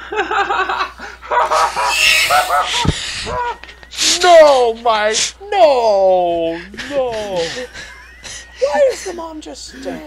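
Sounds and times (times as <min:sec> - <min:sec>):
men crying out and laughing: 0:01.2 - 0:03.8, 0:07.1 - 0:08.9.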